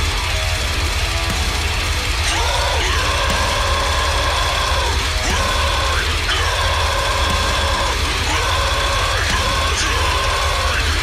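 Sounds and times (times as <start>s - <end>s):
distorted guitars: 0.0s - 11.0s
fast low drumming: 0.0s - 11.0s
heavy metal music: 0.0s - 11.0s.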